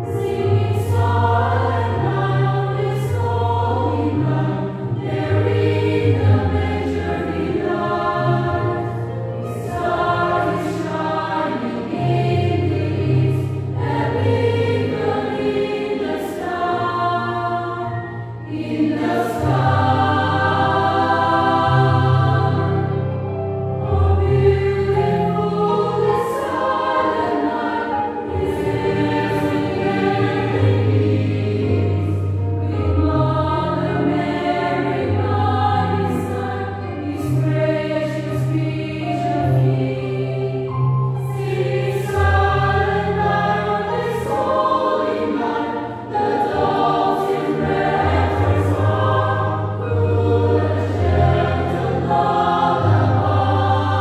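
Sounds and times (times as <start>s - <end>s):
mixed choir singing in harmony: 0.0s - 54.0s.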